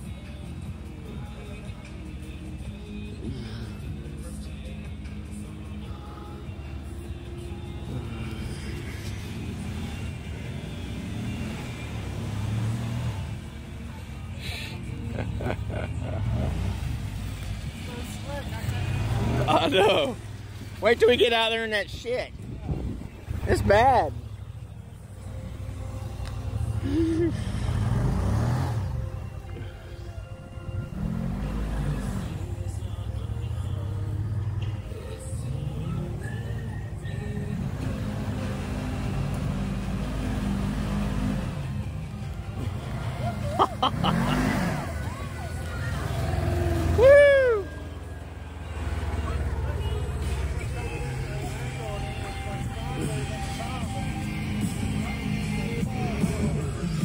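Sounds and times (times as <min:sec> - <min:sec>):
faint song with singing: 0:00.0 - 0:20.9, 0:21.9 - 0:57.0
vehicle engine revving: 0:06.7 - 0:21.7, 0:22.6 - 0:29.5, 0:30.6 - 0:57.0.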